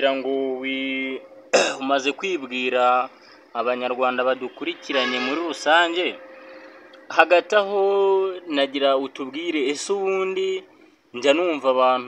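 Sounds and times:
man clearing throat: 0:01.5 - 0:01.9.

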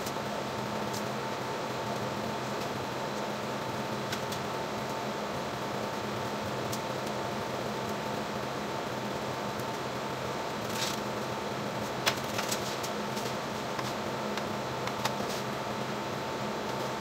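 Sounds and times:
faint steady whine: 0:00.0 - 0:17.0
ventilation fan humming: 0:00.0 - 0:17.0.

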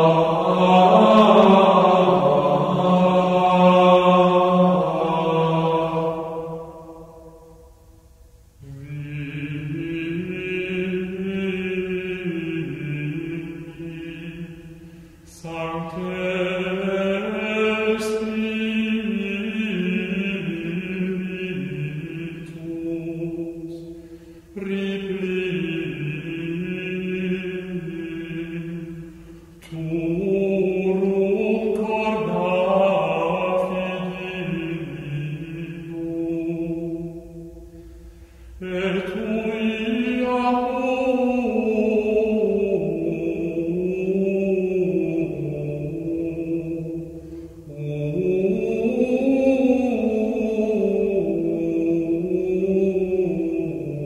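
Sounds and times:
person singing slow devotional chant: 0:00.0 - 0:54.0.

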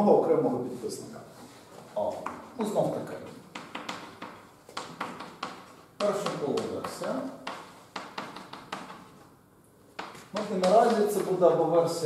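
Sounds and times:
chalk tapping on blackboard: 0:03.2 - 0:09.3, 0:09.9 - 0:11.4
chalk scratching: 0:10.0 - 0:11.4.

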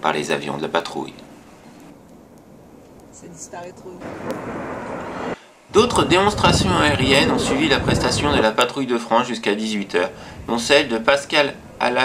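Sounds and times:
jet aircraft rushing: 0:03.6 - 0:08.6.

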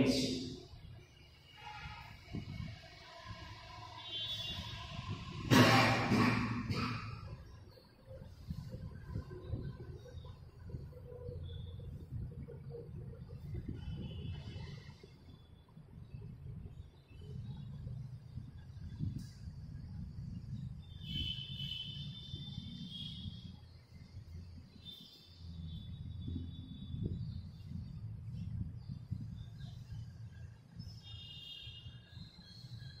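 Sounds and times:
steady low rumble: 0:25.4 - 0:30.9.

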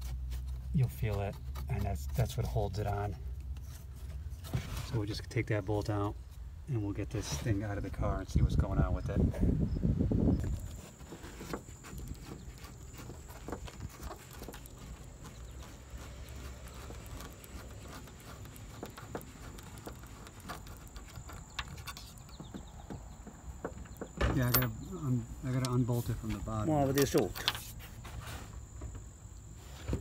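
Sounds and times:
low rumble of handling: 0:00.0 - 0:30.0.

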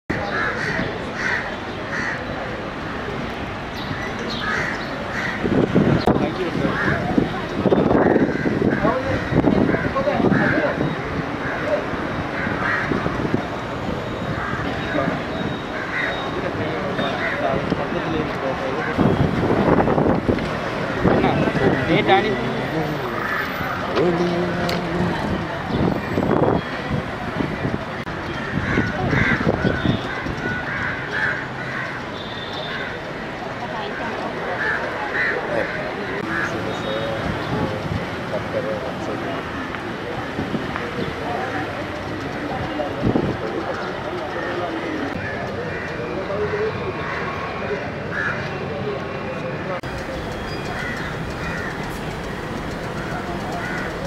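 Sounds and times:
outdoor background noise: 0:00.0 - 0:54.0
crows cawing: 0:00.1 - 0:02.4, 0:04.3 - 0:05.5, 0:06.6 - 0:07.1, 0:08.0 - 0:10.8, 0:12.3 - 0:13.0, 0:14.3 - 0:15.0, 0:15.7 - 0:16.3, 0:17.1 - 0:17.6, 0:23.1 - 0:24.0, 0:28.4 - 0:33.0, 0:34.6 - 0:36.8, 0:45.2 - 0:47.3, 0:48.1 - 0:48.5, 0:49.9 - 0:54.0
indistinct background voices: 0:14.7 - 0:28.0, 0:48.9 - 0:54.0
bird calling: 0:49.8 - 0:54.0.

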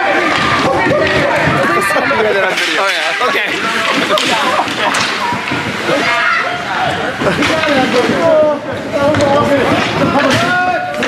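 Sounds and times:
skates scraping ice: 0:00.0 - 0:11.0
spectators' voices: 0:00.0 - 0:11.0
sharp crack: 0:02.4 - 0:06.2.

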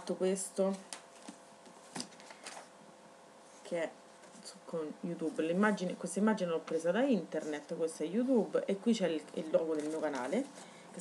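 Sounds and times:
paper pages rustling: 0:00.7 - 0:02.8, 0:09.4 - 0:10.7.

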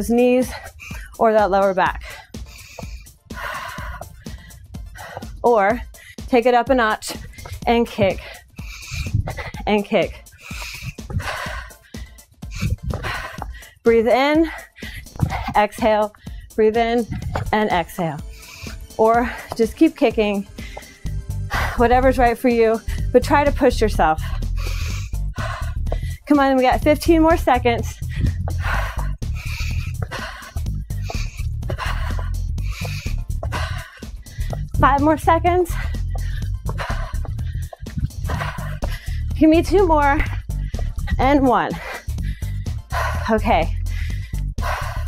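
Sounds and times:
background music: 0:00.0 - 0:45.0
woman breathing hard: 0:00.4 - 0:01.2, 0:02.0 - 0:06.3, 0:07.1 - 0:09.6, 0:10.2 - 0:17.5, 0:18.2 - 0:19.6, 0:20.4 - 0:21.8, 0:22.8 - 0:23.1, 0:24.2 - 0:26.3, 0:27.8 - 0:34.8, 0:35.6 - 0:39.4, 0:40.2 - 0:45.0
feet thudding on exercise mat: 0:10.5 - 0:11.7, 0:12.6 - 0:13.6, 0:15.0 - 0:15.6, 0:16.9 - 0:18.0, 0:26.8 - 0:39.1
woman speaking: 0:26.3 - 0:27.9, 0:34.8 - 0:35.8, 0:39.4 - 0:40.3, 0:41.1 - 0:41.8, 0:43.3 - 0:43.7.

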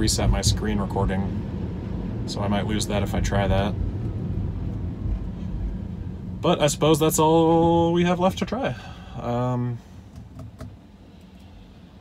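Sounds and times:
low steady cabin hum: 0:00.0 - 0:12.0.

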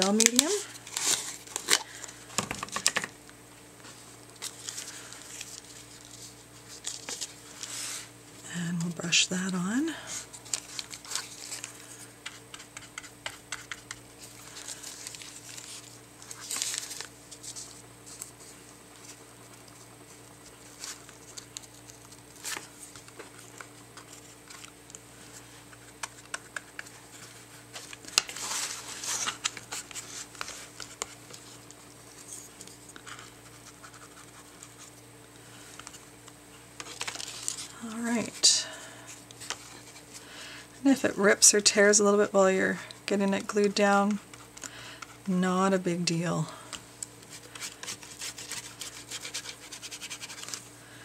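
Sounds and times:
rice paper rustling: 0:00.0 - 0:03.0, 0:03.8 - 0:08.2, 0:09.9 - 0:36.2, 0:46.5 - 0:51.0
steady low hum: 0:00.0 - 0:51.0.

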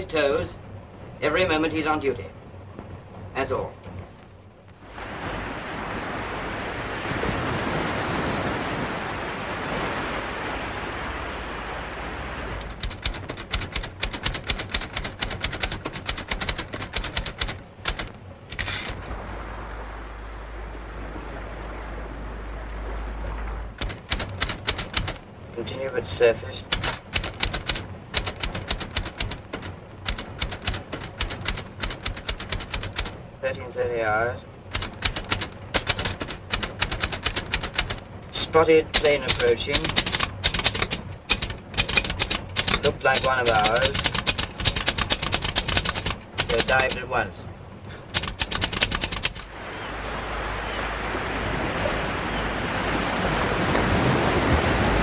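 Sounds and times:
sea: 0:00.0 - 0:55.0
wind: 0:00.0 - 0:55.0
manual typewriter typing: 0:12.6 - 0:18.8, 0:23.8 - 0:25.2, 0:26.6 - 0:33.2, 0:34.7 - 0:38.0, 0:38.9 - 0:47.1, 0:48.0 - 0:49.5.

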